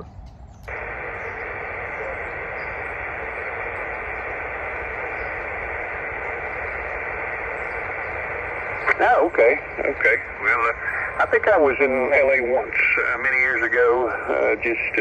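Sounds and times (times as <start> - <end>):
radio static hiss: 0.7 - 15.0.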